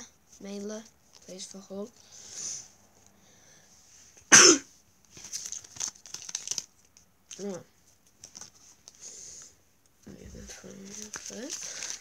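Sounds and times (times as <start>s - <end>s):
loud cough: 4.3s - 4.7s
packet wrapper rustling: 5.0s - 9.0s, 10.4s - 12.0s.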